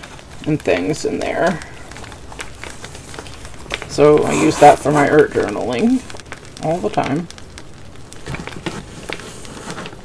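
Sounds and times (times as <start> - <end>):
fabric pouch rustling: 1.8 - 6.2.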